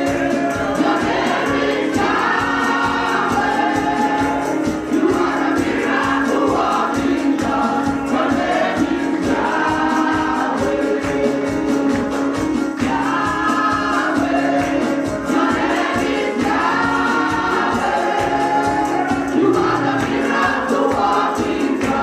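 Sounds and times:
women's choir singing: 0.0s - 22.0s.

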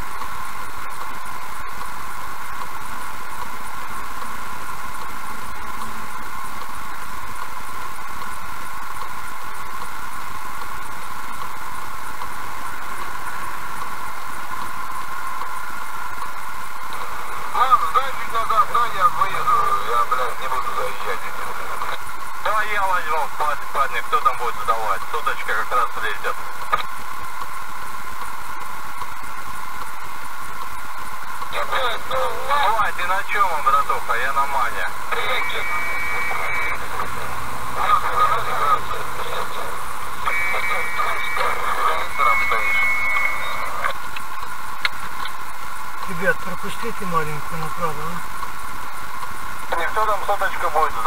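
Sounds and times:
radio-filtered voices talking: 16.9s - 26.9s, 31.4s - 48.4s, 49.6s - 51.0s.

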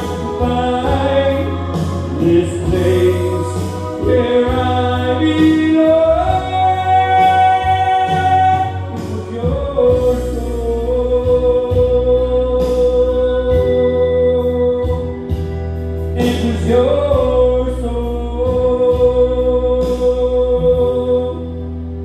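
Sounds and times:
man singing into microphone: 0.0s - 21.8s
music with held chords: 0.0s - 22.0s.

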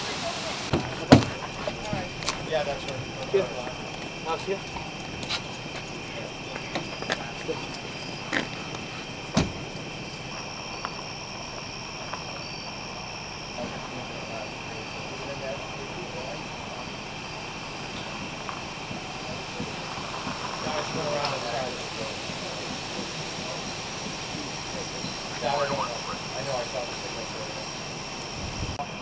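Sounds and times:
night insects chirring: 0.0s - 29.0s
voices murmuring: 0.0s - 29.0s.

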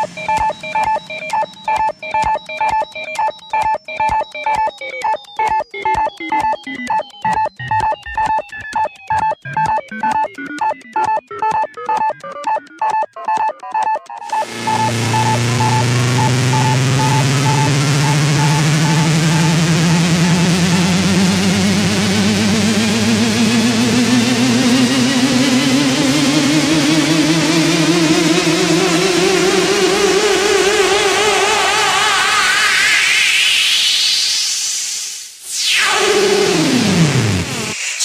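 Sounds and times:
held wobbling synth tones: 14.2s - 32.4s, 35.5s - 38.0s
sustained bass drone: 14.3s - 32.3s
rising synth sweep: 14.3s - 38.0s.

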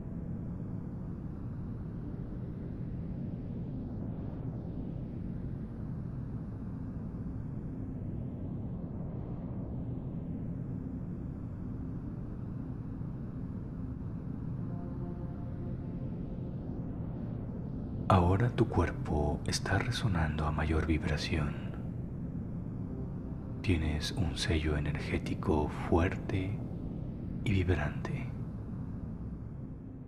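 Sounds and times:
ambient meditation music drone: 0.0s - 30.0s.

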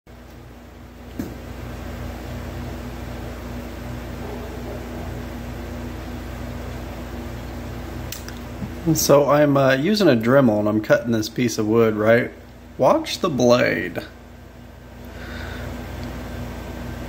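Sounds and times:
electrical hum: 0.1s - 17.0s.

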